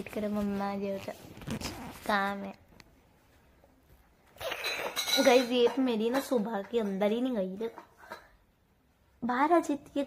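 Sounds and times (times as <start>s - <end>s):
rustling scraping noise: 0.0s - 2.5s.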